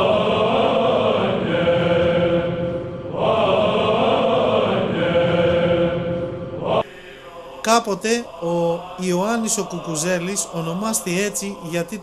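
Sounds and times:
voices singing long held notes: 0.0 - 12.0.

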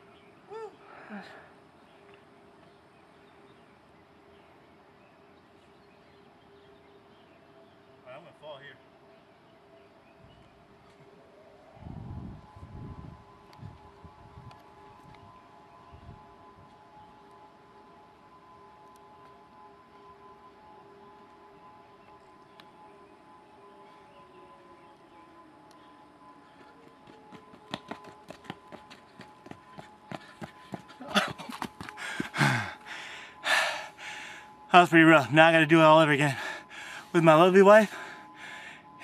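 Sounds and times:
distant warning siren: 0.0 - 39.0
footfalls on dirt trail: 27.0 - 32.8.

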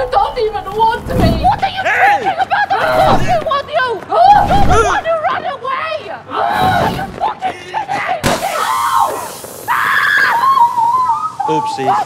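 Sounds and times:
long high-pitched scream: 8.6 - 11.7.

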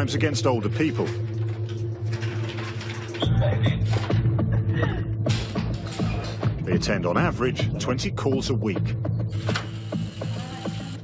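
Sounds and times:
door creak: 9.3 - 10.0.

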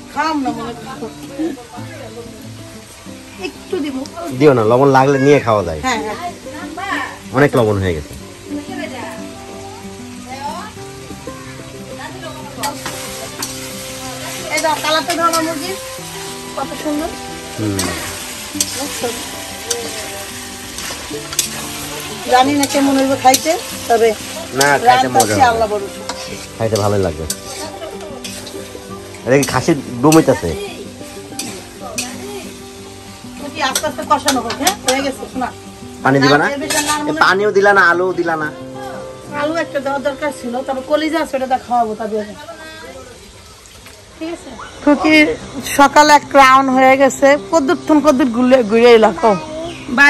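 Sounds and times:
background music with held notes: 0.0 - 43.6, 44.9 - 50.0
food frying in a wok: 0.0 - 50.0
metal spatula scraping pan: 17.8 - 30.4, 36.6 - 37.2.

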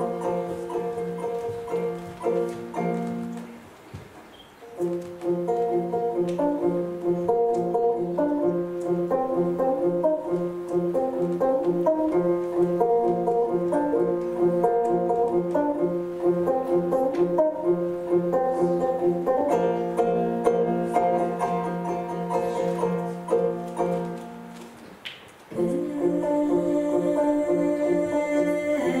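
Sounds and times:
plucked lute: 0.0 - 3.6, 4.7 - 24.8, 25.5 - 29.0.

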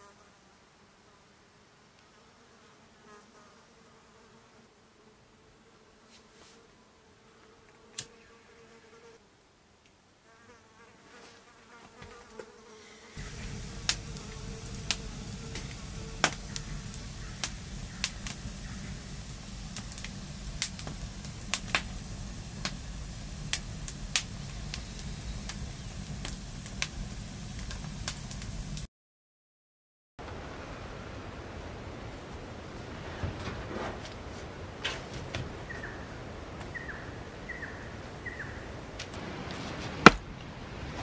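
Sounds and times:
faint insect buzz: 0.0 - 9.4, 10.2 - 28.9
campfire crackling and popping: 13.2 - 28.9.

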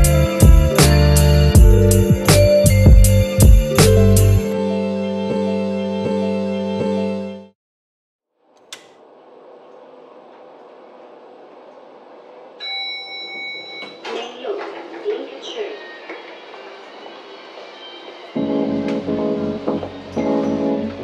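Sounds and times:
music with guitar and bass: 0.0 - 5.4
steady ringing tone: 12.6 - 14.0
indistinct voices: 13.8 - 21.0.

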